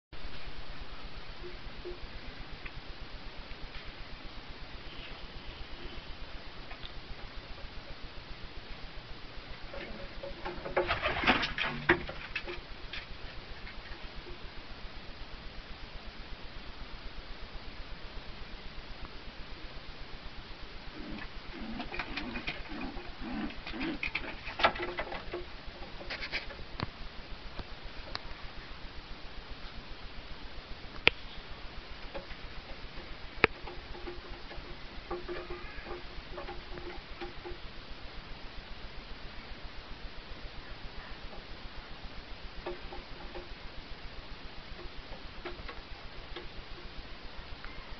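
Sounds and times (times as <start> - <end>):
pigeon wings flapping: 10.6 - 12.6
pigeon cooing: 20.9 - 26.2.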